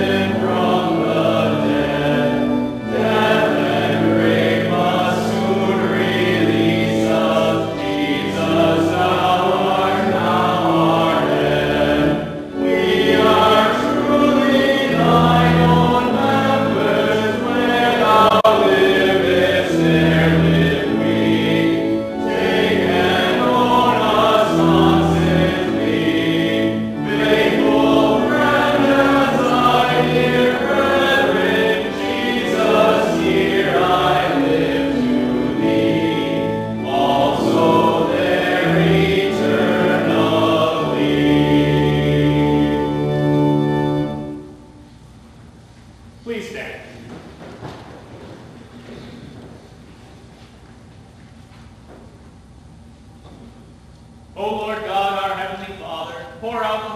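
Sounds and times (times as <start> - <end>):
voices singing a hymn: 0.0 - 44.9, 54.4 - 56.9
organ accompaniment: 0.0 - 46.8.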